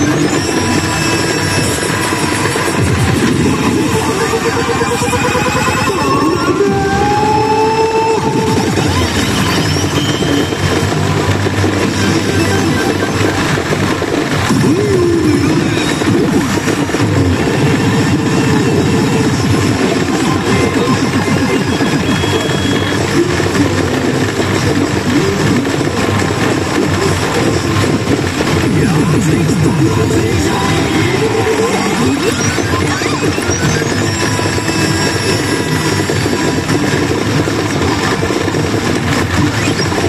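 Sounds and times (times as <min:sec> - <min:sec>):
pachinko machine music and effects: 0:00.0 - 0:40.0
pachinko parlor din: 0:00.0 - 0:40.0.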